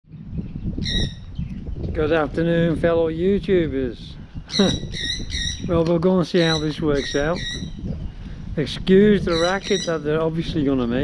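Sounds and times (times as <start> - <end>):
parrot calling: 0.8 - 1.2, 4.5 - 5.7, 6.4 - 7.8, 9.2 - 10.1.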